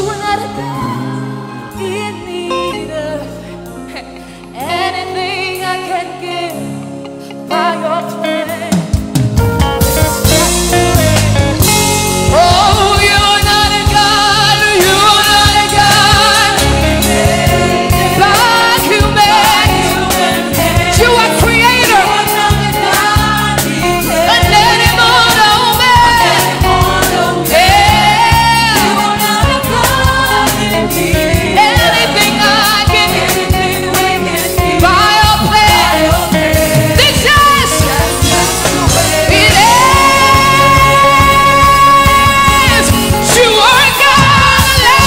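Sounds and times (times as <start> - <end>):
backing singers: 0.0 - 6.6, 10.3 - 45.0
band playing: 0.0 - 45.0
woman singing lead: 0.0 - 45.0.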